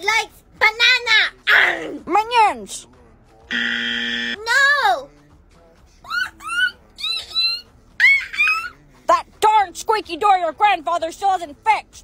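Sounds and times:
woman imitating monkey cries: 0:06.1 - 0:08.7.

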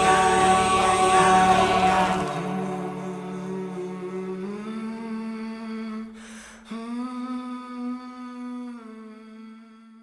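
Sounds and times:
man humming low note: 0:00.0 - 0:06.1
man breathing: 0:06.2 - 0:06.7.

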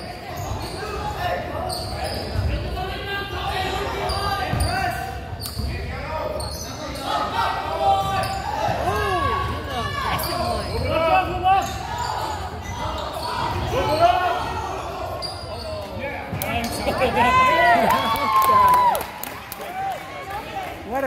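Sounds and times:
sneakers squeaking on gym floor: 0:00.0 - 0:02.7, 0:03.9 - 0:07.3, 0:07.9 - 0:16.8.

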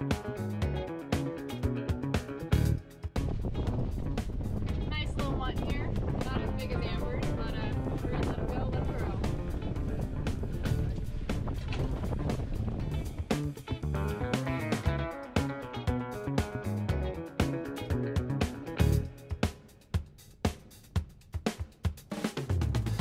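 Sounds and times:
background guitar music: 0:00.0 - 0:19.8
wind and water noise: 0:03.2 - 0:14.0.

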